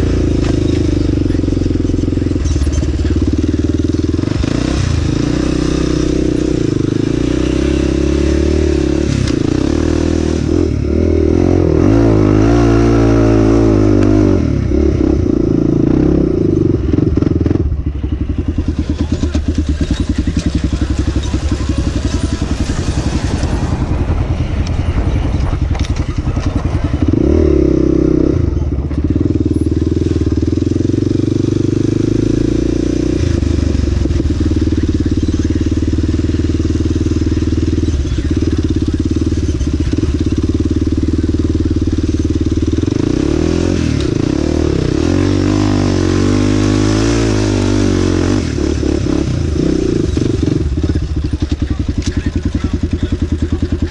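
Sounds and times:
quad bike engine revving: 0.0 - 53.9.

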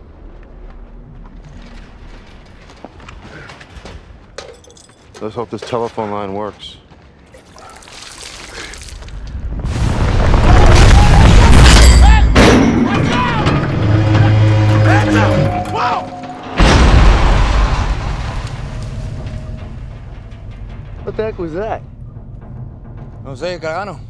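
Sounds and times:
heavy crash: 8.9 - 23.8
deep rumble: 13.3 - 24.0.

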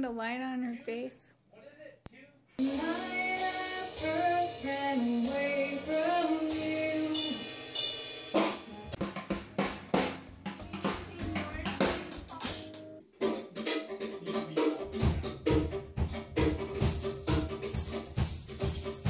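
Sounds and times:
snare and cymbal strikes: 2.6 - 19.0
steady beat with bass drum: 2.6 - 19.0.

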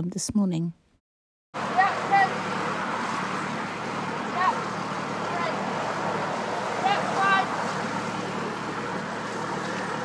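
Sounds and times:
engine hum: 1.6 - 10.0.

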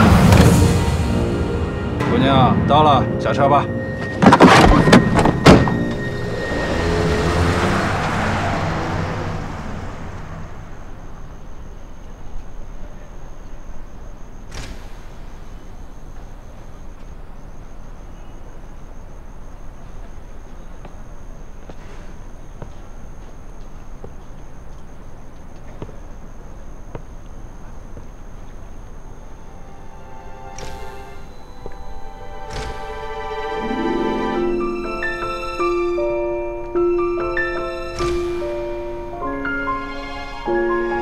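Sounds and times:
car pulling away: 3.8 - 12.2, 29.3 - 41.0
faint high steady tone: 9.4 - 14.5, 15.3 - 21.6, 24.4 - 37.9.

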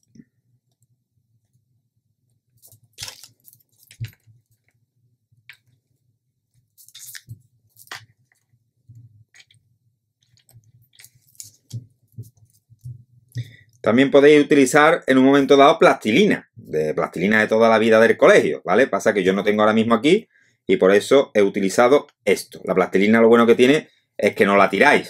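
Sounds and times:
soft handling noise: 0.0 - 13.8.

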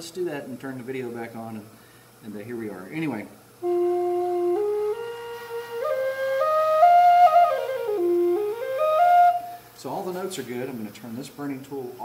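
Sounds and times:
flute playing scale notes: 3.6 - 9.7.

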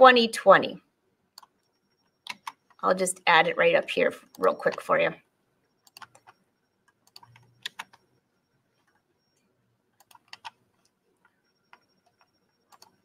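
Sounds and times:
keyboard typing: 1.4 - 3.0, 4.2 - 5.0, 5.7 - 13.0.

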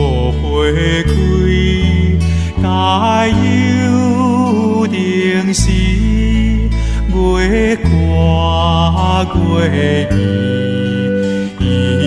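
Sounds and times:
sustained instrumental accompaniment: 0.0 - 12.0
voice chanting slow notes: 0.0 - 12.0.

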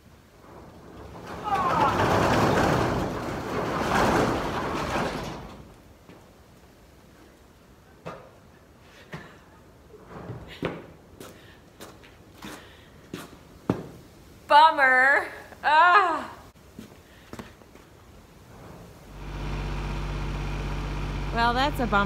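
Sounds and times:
metal roll-up door rattling: 0.1 - 6.0
door squealing: 1.0 - 5.6.

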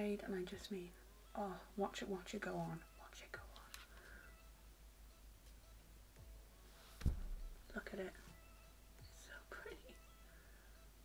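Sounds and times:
faint whispering voice: 2.5 - 4.0.

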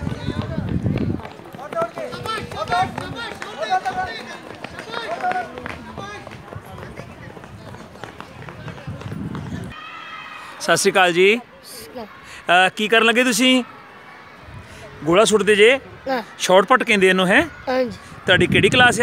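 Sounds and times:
running footsteps: 0.0 - 9.8
voices shouting and calling out: 0.0 - 19.0
low rumbling on microphone: 6.4 - 9.8.

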